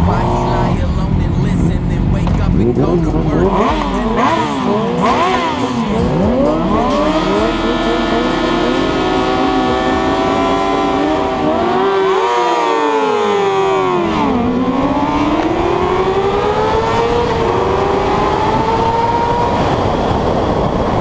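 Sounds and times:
sportbike engines at full throttle: 0.0s - 21.0s.

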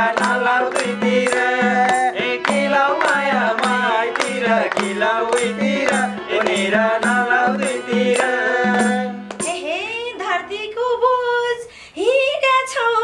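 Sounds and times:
hand drum beat: 0.0s - 9.7s
harmonium: 0.0s - 10.9s
person singing: 0.0s - 11.5s.

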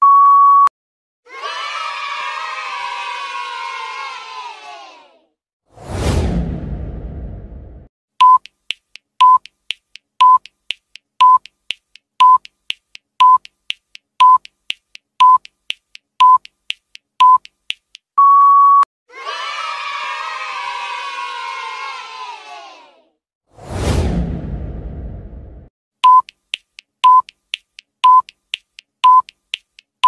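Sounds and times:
children cheering: 1.3s - 5.2s, 19.1s - 23.1s
short whoosh: 5.7s - 7.9s, 23.6s - 25.7s
countdown timer beeps: 8.2s - 8.6s, 9.2s - 9.5s, 10.2s - 10.5s, 11.2s - 11.5s, 12.2s - 12.5s, 13.2s - 14.5s, 15.2s - 15.6s, 16.2s - 16.6s, 17.2s - 17.6s, 18.2s - 18.9s, 26.0s - 29.7s.

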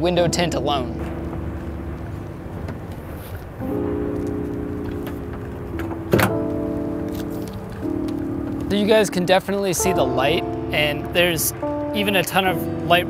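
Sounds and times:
sustained music chords: 0.0s - 13.0s.

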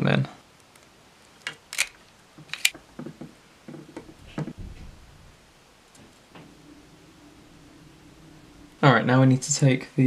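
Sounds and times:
wires knocking and rustling: 0.6s - 9.6s.

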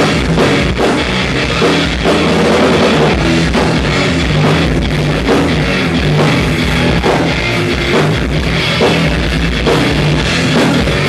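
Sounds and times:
distorted electric guitar: 0.0s - 11.0s
fast drum kit: 0.0s - 11.0s.

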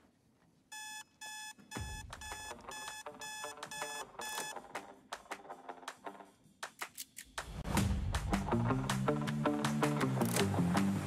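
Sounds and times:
alarm clock beeping: 0.7s - 4.6s.

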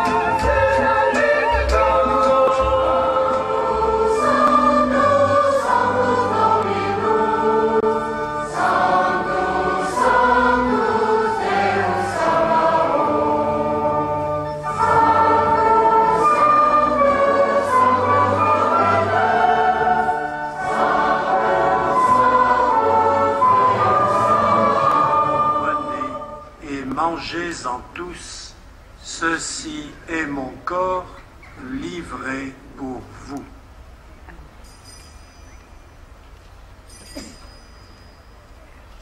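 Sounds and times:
choir singing a hymn: 0.0s - 26.8s.

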